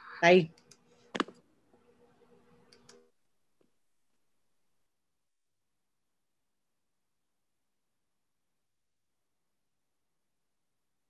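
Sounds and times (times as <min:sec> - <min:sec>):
faint low hum: 0:00.0 - 0:11.0
faint clicks: 0:02.6 - 0:03.1.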